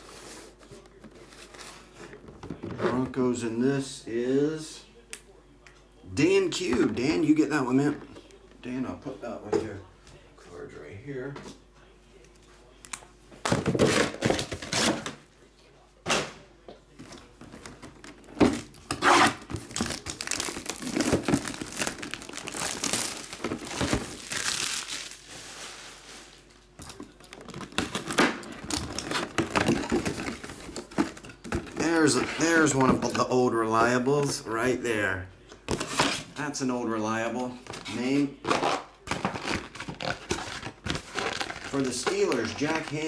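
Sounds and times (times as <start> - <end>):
plastic wrap crinkling and tearing: 17.6 - 31.9, 38.4 - 43.0.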